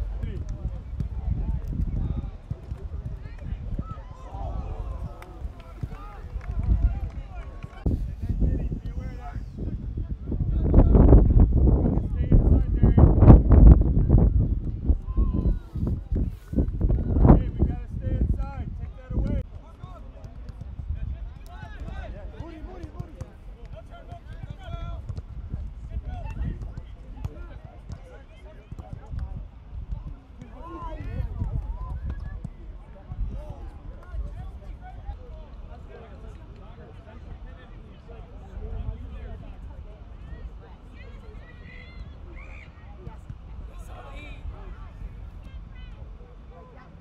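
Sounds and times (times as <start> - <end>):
low microphone rumble: 0.0 - 19.5
distant shouts of players: 1.9 - 9.6, 40.2 - 46.9
distant players calling out: 40.4 - 47.0.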